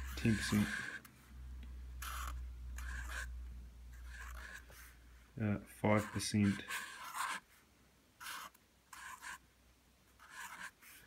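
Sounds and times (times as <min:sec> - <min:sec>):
marker pen scratching on paper: 0:00.0 - 0:01.3, 0:02.0 - 0:05.0, 0:05.8 - 0:07.6, 0:08.2 - 0:09.4, 0:10.1 - 0:11.0.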